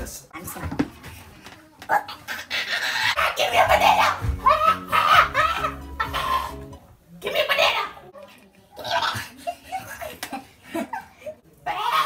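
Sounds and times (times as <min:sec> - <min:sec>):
low background music: 0:03.2 - 0:07.0
people laughing: 0:03.2 - 0:08.1, 0:08.8 - 0:11.5.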